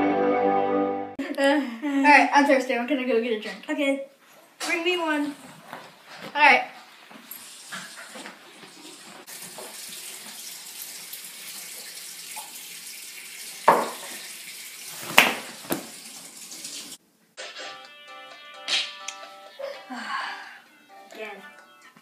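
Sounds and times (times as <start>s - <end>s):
background music with sustained notes: 0.0s - 1.2s, 17.7s - 22.0s
water running from a tap: 7.1s - 17.0s.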